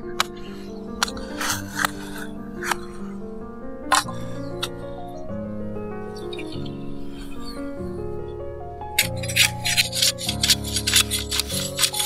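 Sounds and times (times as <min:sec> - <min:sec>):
background music: 0:00.0 - 0:12.0
knife cutting bamboo: 0:09.0 - 0:12.0.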